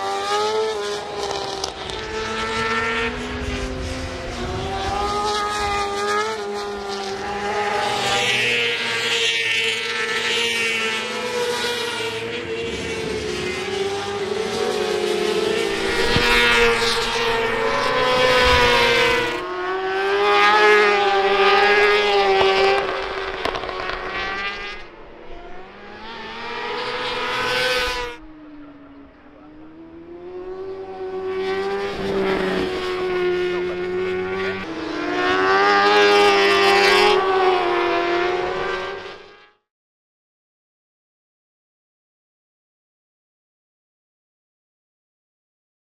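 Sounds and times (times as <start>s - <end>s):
racing motorcycles passing: 0.0s - 39.6s.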